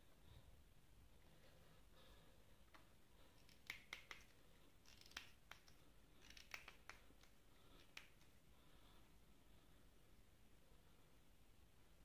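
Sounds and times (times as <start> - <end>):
wire scratching: 3.3 - 8.3.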